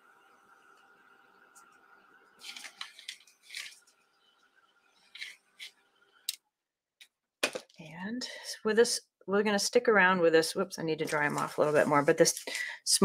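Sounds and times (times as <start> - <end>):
room hum: 0.0 - 6.5
hands rustling painting materials: 2.4 - 4.0, 5.0 - 5.8, 11.0 - 12.8.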